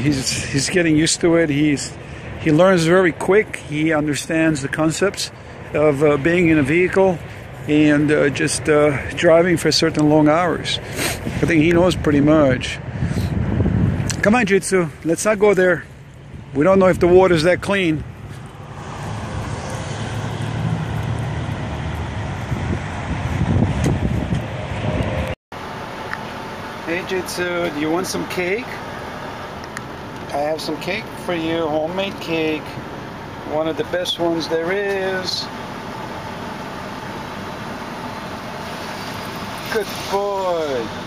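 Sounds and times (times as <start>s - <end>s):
mechanical hum in truck cab: 0.0s - 41.0s
road traffic rumble: 0.0s - 41.0s.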